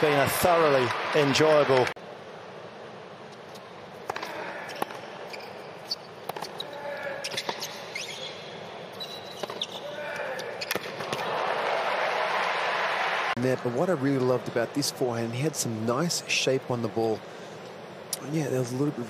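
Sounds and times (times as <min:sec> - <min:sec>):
murmur of arena crowd: 0:00.0 - 0:05.3, 0:09.8 - 0:19.0
sneaker squeaks: 0:04.2 - 0:11.3.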